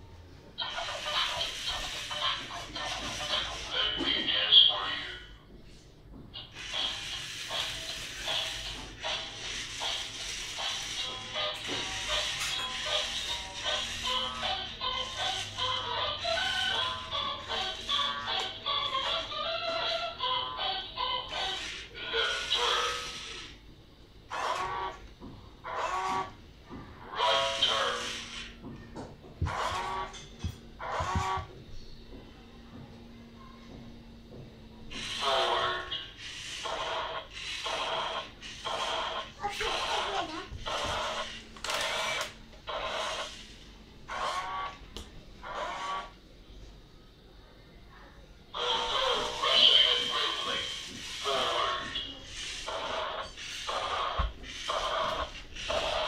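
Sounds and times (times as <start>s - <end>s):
electronic music from toy speaker: 0.6s - 5.2s, 6.4s - 23.5s, 34.9s - 43.5s, 48.6s - 56.0s.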